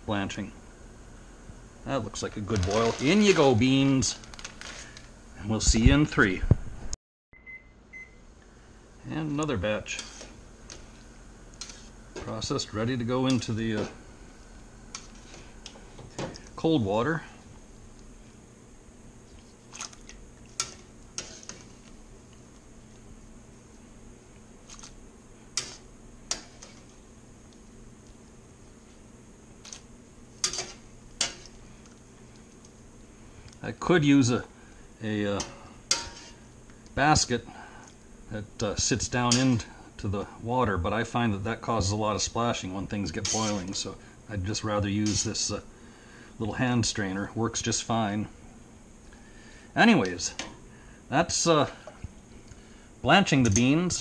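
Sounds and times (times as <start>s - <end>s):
steady low background noise: 0.0s - 54.0s
kitchen timer beeps: 7.3s - 8.2s.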